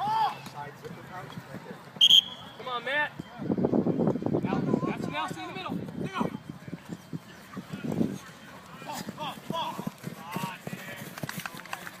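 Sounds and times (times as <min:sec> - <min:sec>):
running footsteps on grass: 0:05.7 - 0:12.0.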